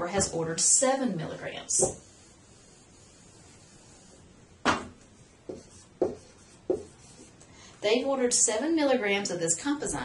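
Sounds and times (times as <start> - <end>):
marker tip knocking whiteboard: 1.8 - 2.1, 4.6 - 7.0.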